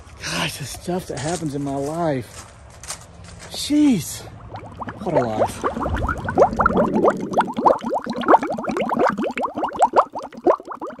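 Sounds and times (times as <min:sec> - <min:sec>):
bubbling water blips: 0:04.3 - 0:11.0.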